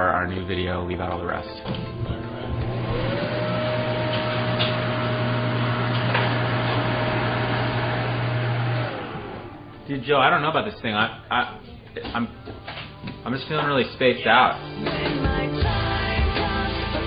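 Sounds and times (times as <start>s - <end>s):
hood hair dryer running: 2.0s - 9.8s.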